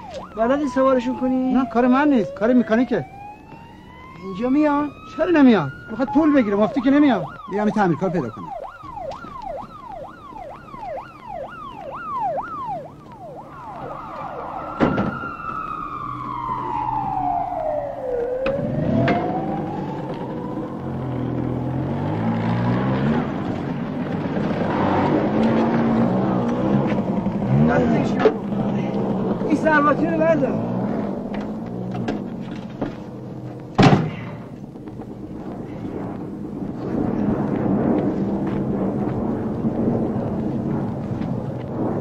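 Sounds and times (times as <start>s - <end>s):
emergency siren yelp and wail: 0.0s - 33.8s.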